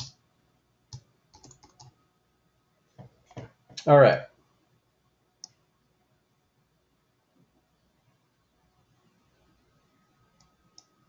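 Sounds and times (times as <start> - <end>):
computer keyboard keystroke: 0.9 - 1.9.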